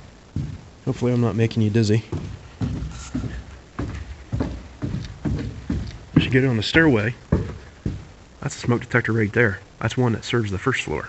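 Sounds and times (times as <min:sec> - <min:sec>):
footsteps on wooden stairs: 0:00.3 - 0:09.1.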